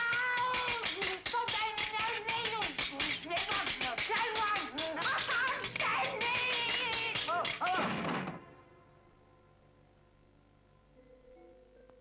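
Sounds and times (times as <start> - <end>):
fast hand claps: 0.0 - 8.4.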